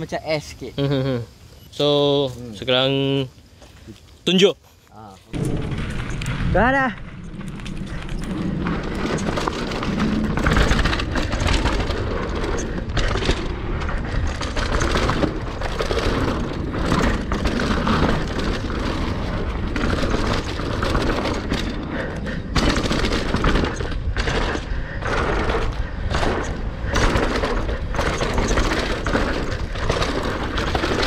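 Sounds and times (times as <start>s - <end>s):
tyres crackling over dirt and leaves: 2.1s - 31.0s
bike rattling over bumps: 5.3s - 31.0s
wind rumble on microphone: 5.3s - 31.0s.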